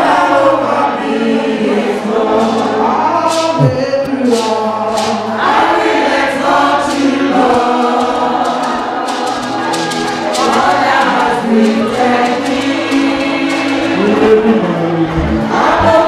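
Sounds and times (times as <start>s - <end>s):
choir and congregation singing hymn: 0.0s - 16.0s.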